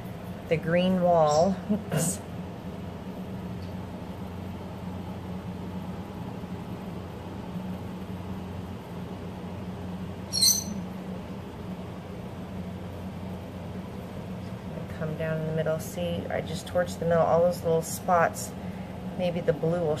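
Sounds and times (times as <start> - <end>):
low room hum: 0.0 - 20.0.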